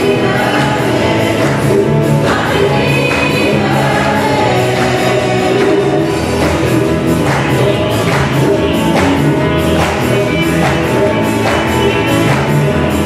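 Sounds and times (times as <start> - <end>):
band with piano drums guitars: 0.0 - 13.0
singers and choir singing: 0.0 - 13.0.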